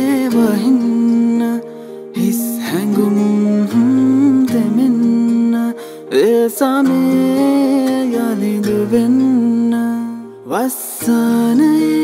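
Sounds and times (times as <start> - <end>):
man singing: 0.0 - 12.0
soft guitar: 0.0 - 12.0.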